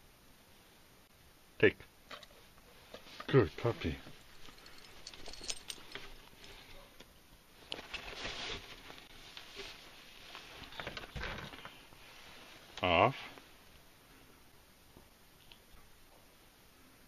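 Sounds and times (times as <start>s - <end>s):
soft clicks and rustles: 4.1s - 13.9s.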